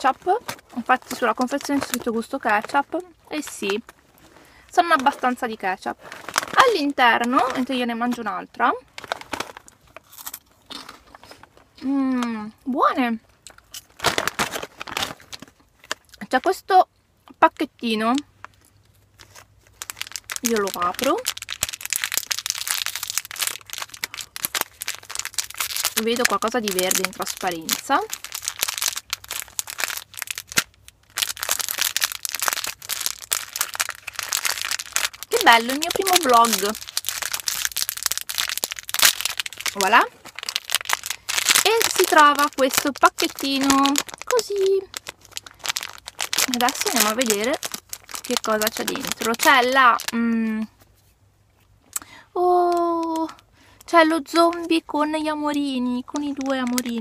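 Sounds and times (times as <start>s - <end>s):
plastic packets crinkling: 0.0s - 11.7s, 13.4s - 16.4s, 17.6s - 50.4s, 52.4s - 57.0s.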